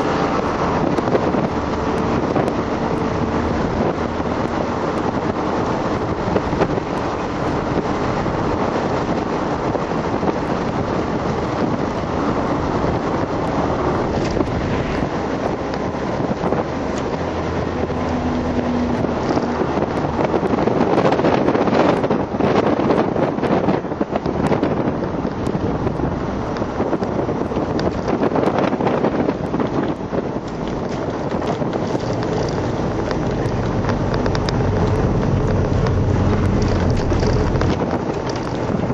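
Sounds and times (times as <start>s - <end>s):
car engine under load: 0.0s - 38.9s
road and wind noise: 0.0s - 38.9s.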